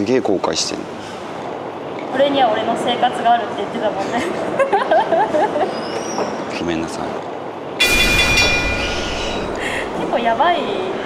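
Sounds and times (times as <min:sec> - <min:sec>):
high ringing tones: 0:07.8 - 0:10.5.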